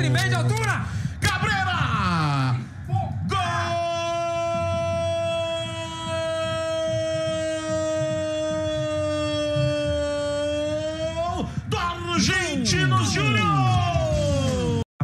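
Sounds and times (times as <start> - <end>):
commentator's drawn-out goal cry: 1.3 - 14.8.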